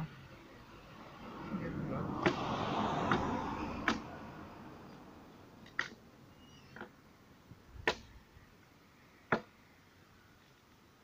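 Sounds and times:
rushing noise: 0:00.7 - 0:05.7.

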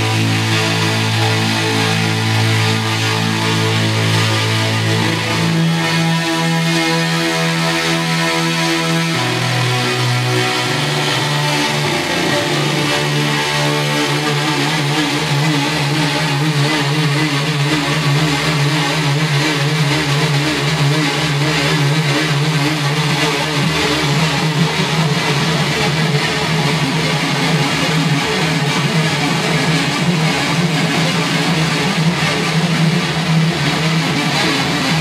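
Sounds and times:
electric guitar music: 0:00.0 - 0:35.0.

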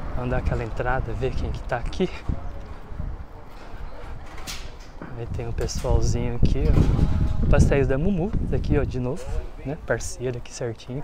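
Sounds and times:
low rumble on microphone: 0:00.0 - 0:10.2
faint distant voices: 0:00.0 - 0:11.0.

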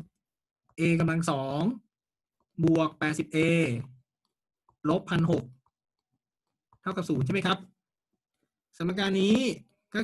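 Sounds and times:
man speaking: 0:00.8 - 0:01.9, 0:02.5 - 0:04.1, 0:04.8 - 0:05.7, 0:06.8 - 0:07.8, 0:08.7 - 0:10.0.

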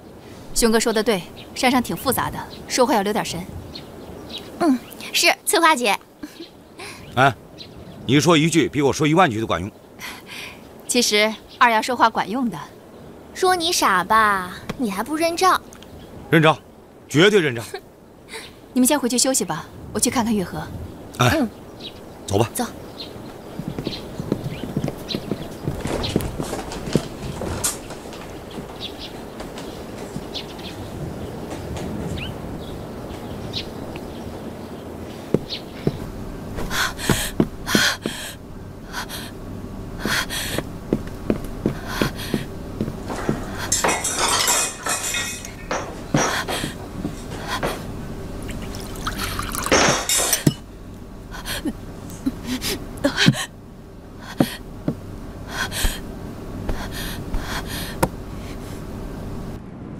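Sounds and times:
footsteps on wooden boards: 0:23.1 - 0:34.1, 0:35.2 - 0:38.4, 0:40.0 - 0:44.4, 0:45.7 - 0:49.0, 0:54.3 - 0:56.0, 0:56.6 - 0:58.2.

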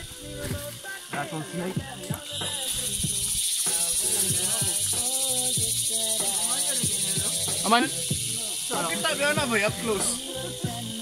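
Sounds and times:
faint voices talking: 0:00.0 - 0:11.0
high-pitched insect chorus: 0:00.0 - 0:11.0.

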